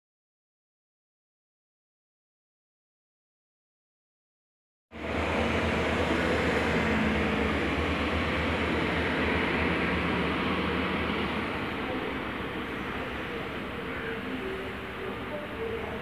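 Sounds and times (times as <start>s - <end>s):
diesel train engine drone: 4.9s - 16.0s
train rail running noise: 5.0s - 16.0s.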